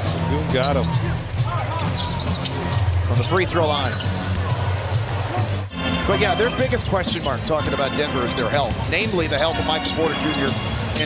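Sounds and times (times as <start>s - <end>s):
arena music: 0.0s - 11.0s.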